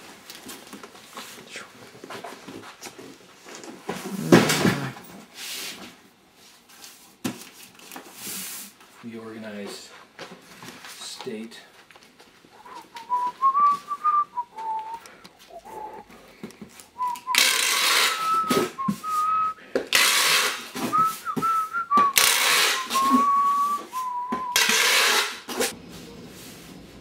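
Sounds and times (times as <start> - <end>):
person whistling a tune: 12.6 - 16.1, 17.0 - 19.6, 20.9 - 24.8.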